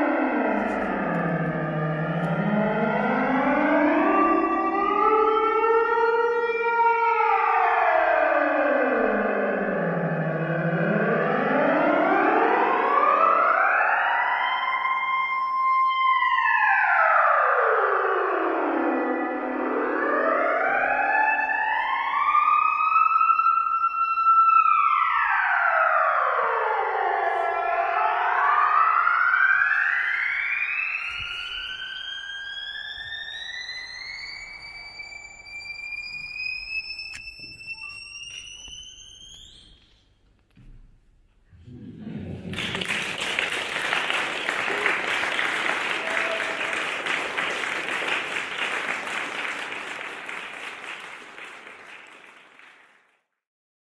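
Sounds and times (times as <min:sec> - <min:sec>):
synthesizer tone sweeping in pitch: 0:00.0 - 0:15.0.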